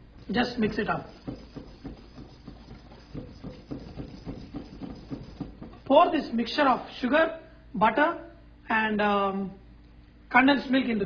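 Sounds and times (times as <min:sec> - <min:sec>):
whisk stirring dry powder in bowl: 0:00.0 - 0:06.4.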